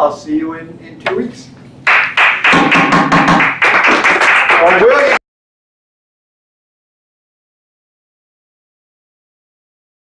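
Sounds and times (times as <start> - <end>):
people applauding: 1.8 - 5.2.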